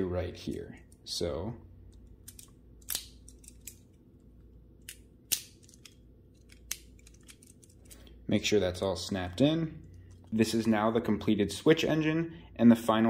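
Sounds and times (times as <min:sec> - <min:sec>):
rustling of plastic parts: 0:02.0 - 0:04.0, 0:05.6 - 0:08.2.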